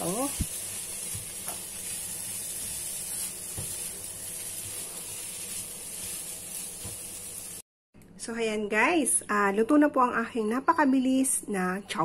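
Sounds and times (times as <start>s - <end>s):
spatula scraping a pan: 0.0s - 7.2s
rice sizzling in a frying pan: 0.0s - 7.6s.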